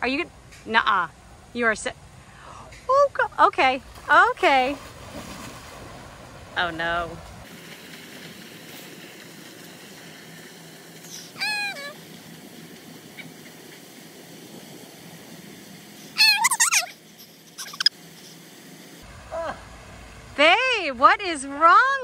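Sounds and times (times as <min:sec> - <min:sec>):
steady background hiss: 0:00.0 - 0:22.0
high wavering cries: 0:11.0 - 0:12.0, 0:16.1 - 0:18.4.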